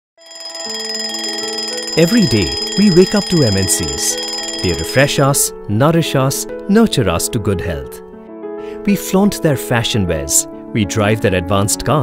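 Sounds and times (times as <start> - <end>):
alarm clock bell ringing: 0.2 - 5.5
soft background music: 0.3 - 12.0.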